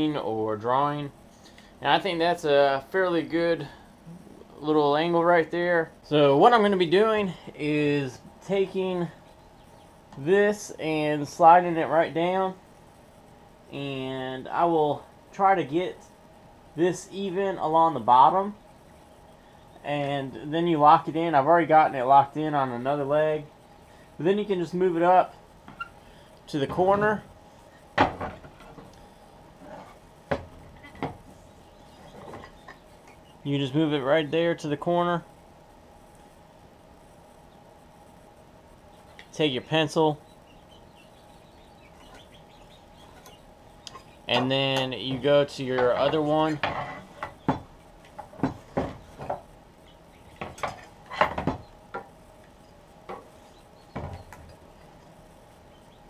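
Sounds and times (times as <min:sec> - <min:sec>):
wood and metal knocks on workbench: 0:28.0 - 0:28.5, 0:30.3 - 0:31.2, 0:48.3 - 0:49.4.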